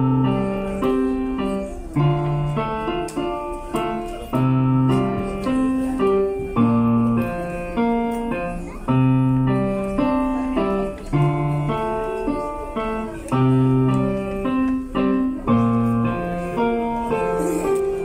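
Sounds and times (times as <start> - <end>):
slow digital piano piece: 0.0 - 18.0.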